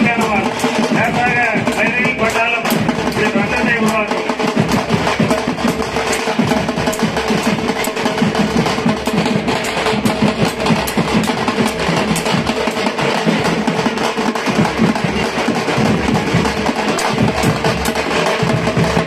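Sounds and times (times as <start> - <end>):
frame drums drumming fast: 0.0 - 19.0.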